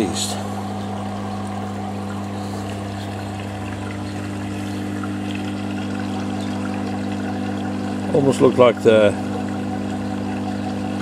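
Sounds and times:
steady low hum: 0.0s - 11.0s
water flowing and trickling: 0.0s - 11.0s.

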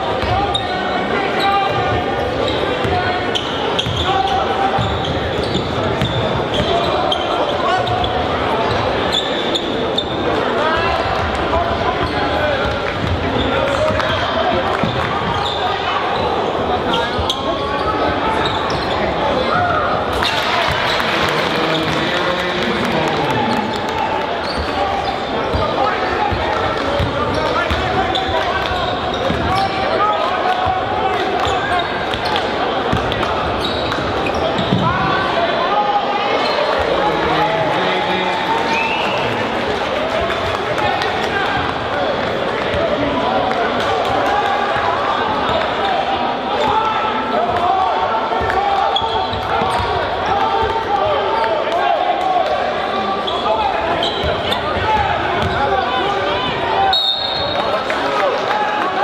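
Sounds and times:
crowd chatter and shouting: 0.0s - 59.0s.

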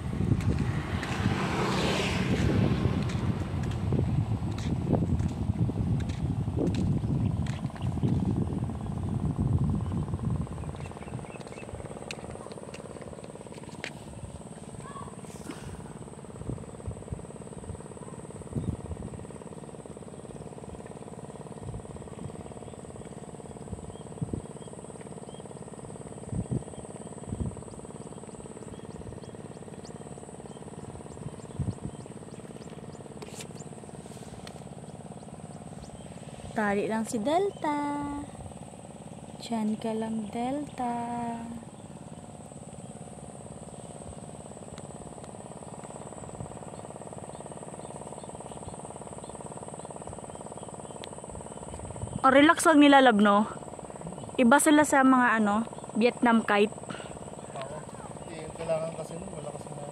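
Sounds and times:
wind buffeting microphone: 0.0s - 19.5s, 20.2s - 47.5s, 51.3s - 53.5s.

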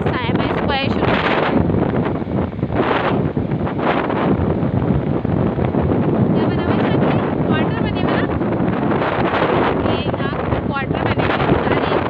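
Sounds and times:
wind rushing over microphone: 0.0s - 12.0s.

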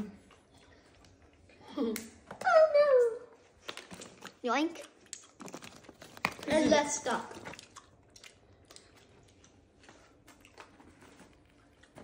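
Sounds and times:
child chewing: 0.0s - 2.3s, 3.4s - 12.0s.

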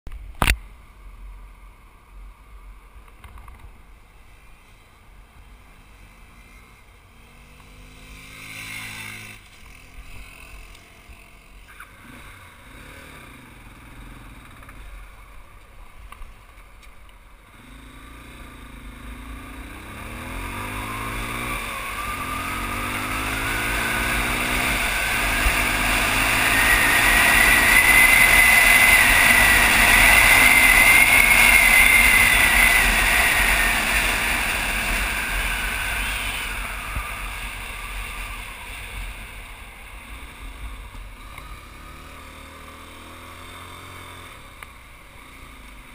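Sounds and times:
motorcycle engine accelerating: 5.8s - 16.5s, 17.3s - 45.9s.

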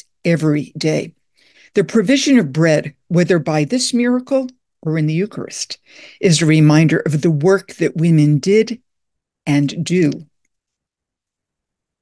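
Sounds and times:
woman speaking: 0.0s - 10.3s.

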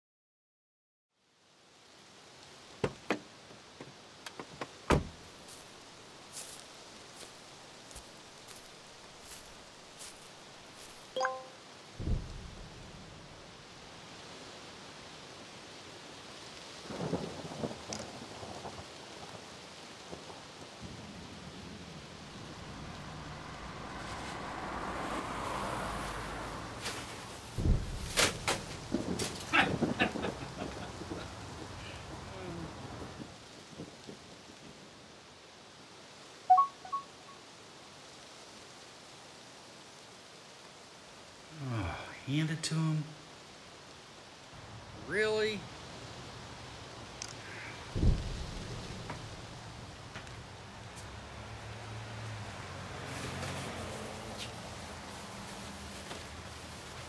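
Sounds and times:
rain falling: 1.2s - 57.0s
thunder cracks and rumble: 12.0s - 13.8s, 16.8s - 26.3s, 27.4s - 34.6s, 47.5s - 50.6s.

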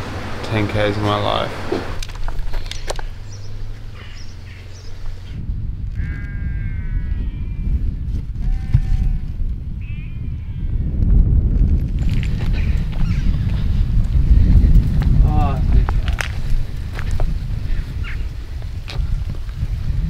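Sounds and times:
wind rumble on microphone: 0.0s - 20.0s
sheep bleating: 6.0s - 7.8s, 8.4s - 10.7s.

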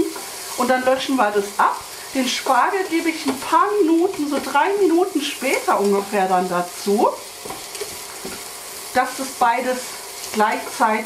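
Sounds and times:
food sizzling in a pot: 0.0s - 11.0s.

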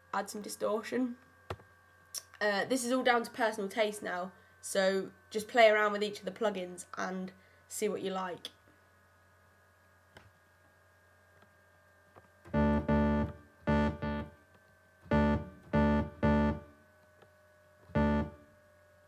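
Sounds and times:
distorted synth bass notes: 12.5s - 14.4s, 15.1s - 16.7s, 17.9s - 18.4s.

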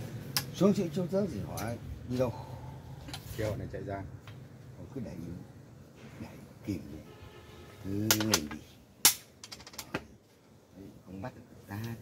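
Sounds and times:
wooden game piece clacking on board: 8.1s - 10.0s.

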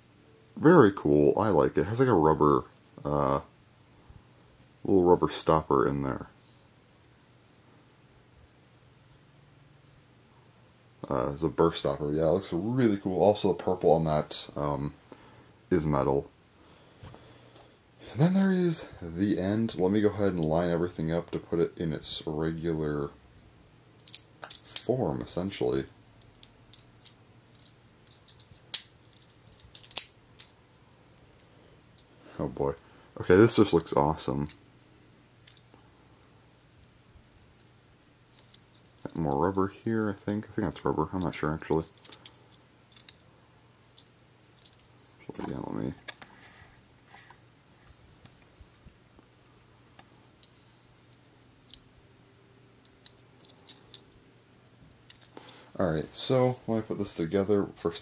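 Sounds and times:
small hard parts clicking: 24.0s - 24.9s, 25.8s - 30.6s, 35.4s - 35.8s, 38.3s - 39.3s, 41.2s - 43.3s, 44.0s - 44.9s, 52.8s - 54.2s, 55.0s - 56.2s.

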